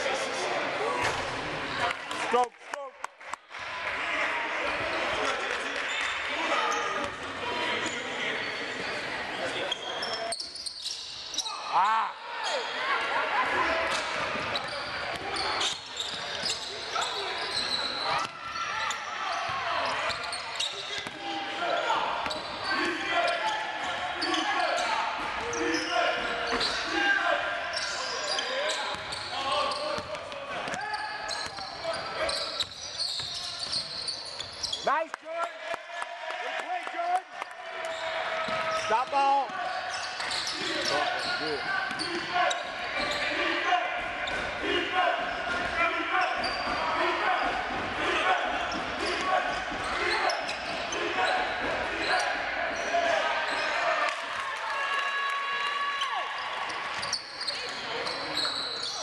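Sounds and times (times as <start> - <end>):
shouting and chatter: 0.0 - 59.0.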